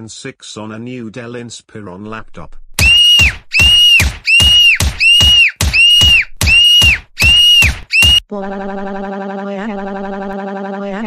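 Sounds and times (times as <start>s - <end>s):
cartoon fight sound effect: 2.8s - 8.2s.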